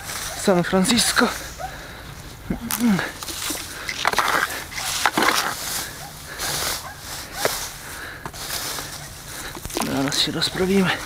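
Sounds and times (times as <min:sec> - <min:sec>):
rake scraping through dry leaves: 0:00.0 - 0:01.6, 0:02.7 - 0:11.0.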